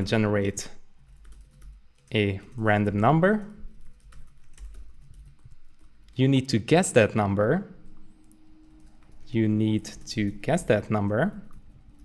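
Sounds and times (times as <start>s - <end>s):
typing on keyboard: 1.0s - 6.2s.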